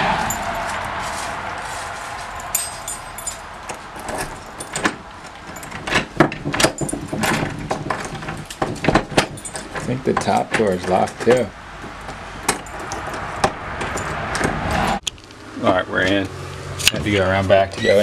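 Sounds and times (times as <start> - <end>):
rushing noise: 0.0 - 5.1
key ring jangling: 0.2 - 0.8, 2.3 - 6.0, 6.6 - 7.5, 9.2 - 9.8, 12.5 - 13.1
keys scraping in lock: 2.3 - 11.5, 12.5 - 14.2.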